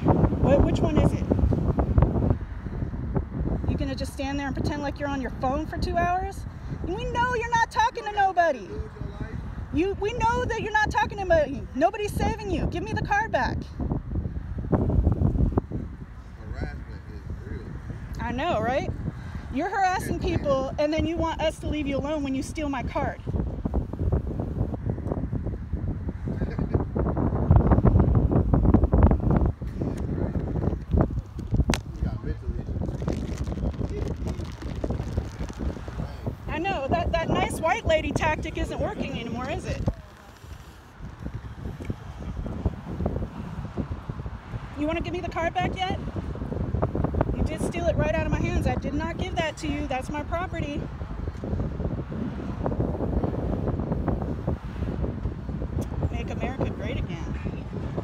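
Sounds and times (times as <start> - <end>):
wind buffeting microphone: 0.0 - 58.0.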